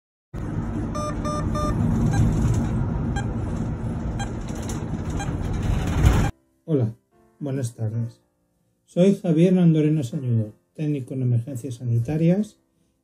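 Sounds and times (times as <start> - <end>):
low traffic rumble: 0.4 - 6.3
electronic beeps: 0.9 - 2.4.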